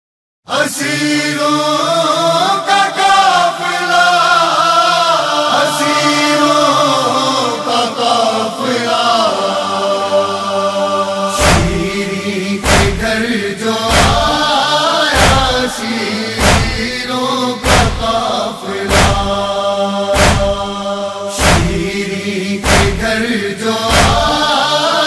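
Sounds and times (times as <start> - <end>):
men chanting a lament: 0.5 - 25.0
heavy thumps: 11.4 - 11.9, 12.6 - 13.2, 13.9 - 14.4, 15.2 - 15.8, 16.4 - 17.0, 17.6 - 18.3, 18.9 - 19.5, 20.2 - 20.8, 21.4 - 21.9, 22.6 - 23.2, 23.9 - 24.3.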